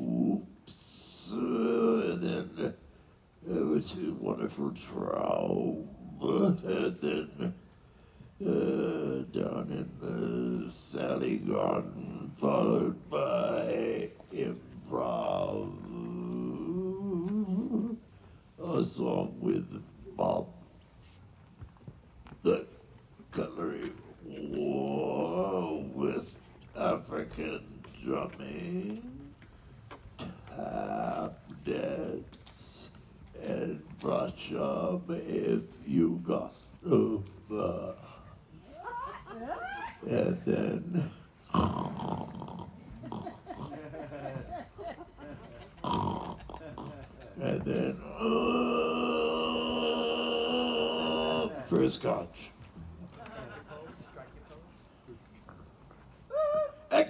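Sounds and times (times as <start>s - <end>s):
person making wordless vocal sounds: 0.0s - 7.6s, 8.4s - 20.6s, 22.4s - 29.6s, 30.2s - 39.1s, 39.8s - 44.1s, 45.7s - 52.4s.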